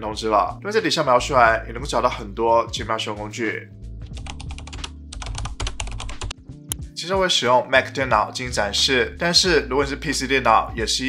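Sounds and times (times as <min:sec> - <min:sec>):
computer keyboard typing: 0:04.2 - 0:06.4.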